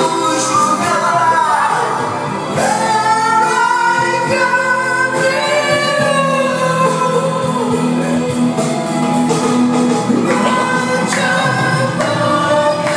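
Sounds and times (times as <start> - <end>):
man singing into microphone: 0.0 - 8.6, 10.1 - 12.9
loud backing track: 0.0 - 12.9.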